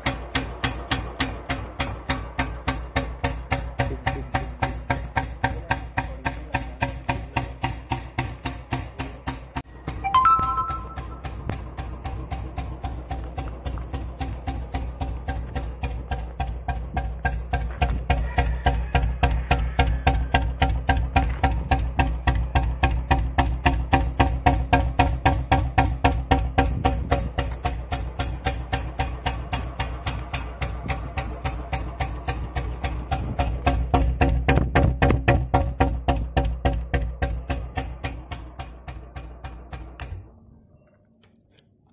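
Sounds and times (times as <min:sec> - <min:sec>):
motorcycle engine idling: 0:00.0 - 0:41.4
brief higher-pitched sound: 0:10.0 - 0:11.4.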